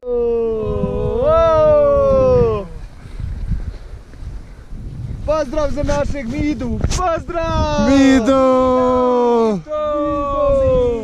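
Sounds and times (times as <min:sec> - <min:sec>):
person yelling: 0:00.0 - 0:02.8, 0:07.0 - 0:11.0.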